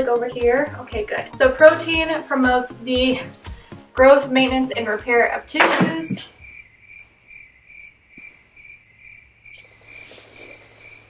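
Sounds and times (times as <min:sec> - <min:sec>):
cricket chirping: 0:06.2 - 0:11.0.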